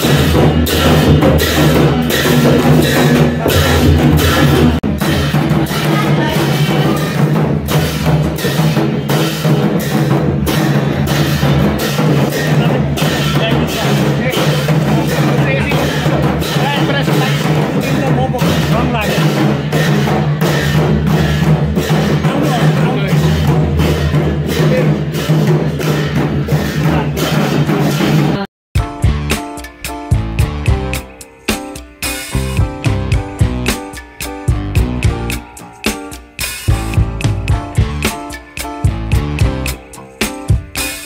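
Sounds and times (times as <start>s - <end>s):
barrel drums beaten with sticks: 0.0s - 41.0s.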